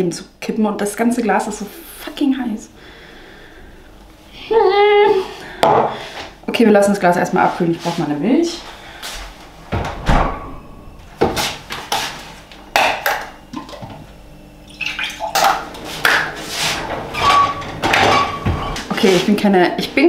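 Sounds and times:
knocks and clatters on kitchen counter: 5.6s - 5.9s.

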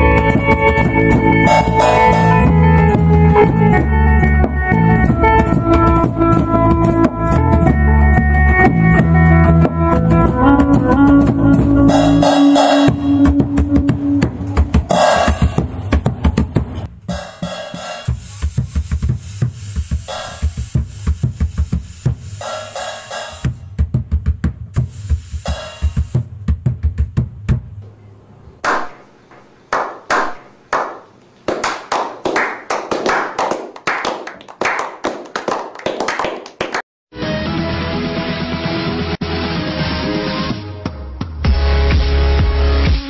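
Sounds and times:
small band playing instrumental: 0.0s - 27.2s
sharp percussive hits: 0.4s - 3.2s, 11.6s - 27.8s.

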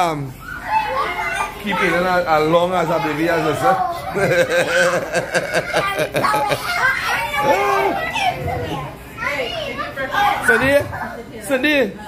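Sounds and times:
children calling out and chattering: 0.0s - 11.4s.

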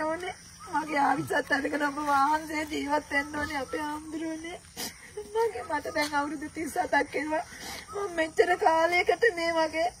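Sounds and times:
woman crying and speaking: 0.7s - 10.0s.

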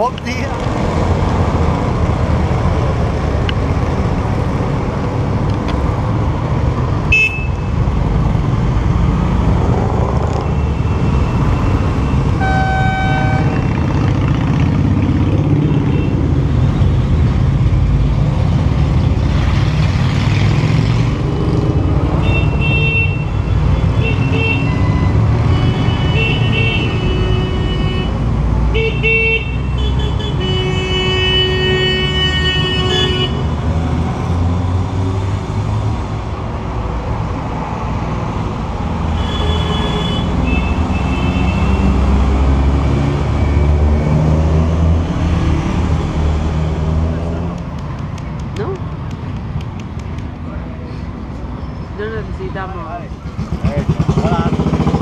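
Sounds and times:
motorcycle and car engines rumbling: 0.0s - 55.0s
horn toots: 12.4s - 13.6s.

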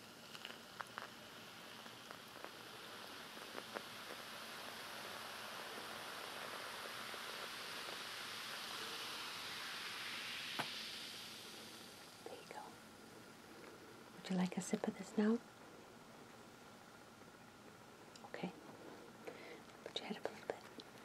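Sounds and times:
fizzy drink pouring: 0.0s - 15.0s.

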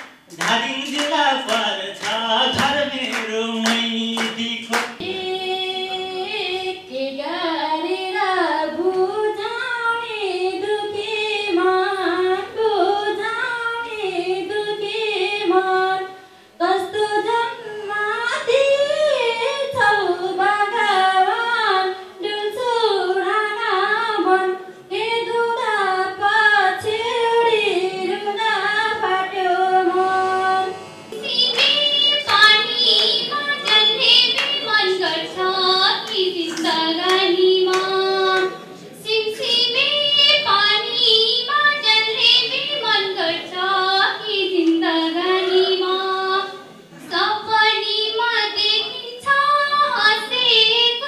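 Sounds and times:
girl singing unaccompanied: 5.0s - 51.0s.

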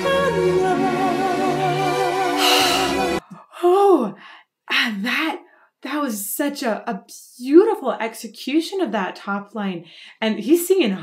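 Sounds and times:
singing with orchestra: 0.0s - 3.2s
woman gasping: 2.4s - 4.6s.

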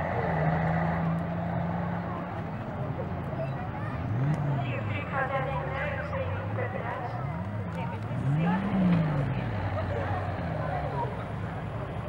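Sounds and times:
car engine revving: 0.0s - 12.0s
people talking: 1.8s - 12.0s.

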